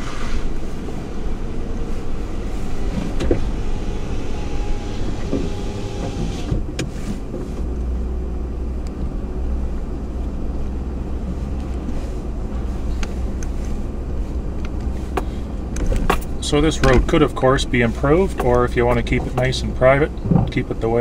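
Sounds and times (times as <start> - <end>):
brush scraping truck body: 0.0 - 7.7
truck engine running: 0.0 - 21.0.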